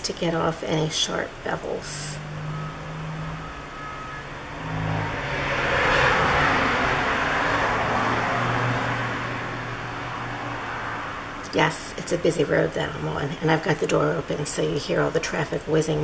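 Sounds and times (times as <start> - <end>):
low engine drone: 0.0 - 16.0
vehicle passing: 0.0 - 16.0.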